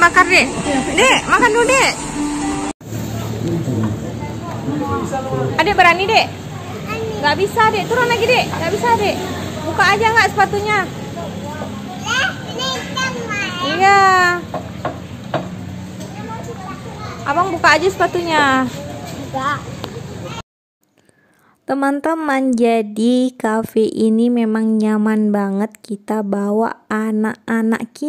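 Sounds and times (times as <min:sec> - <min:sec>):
sharp knock: 0:14.5 - 0:15.6.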